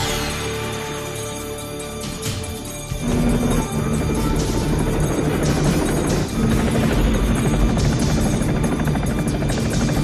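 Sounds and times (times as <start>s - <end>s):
music playing: 0.0s - 10.0s
helicopter rotor blades beating: 0.1s - 10.0s.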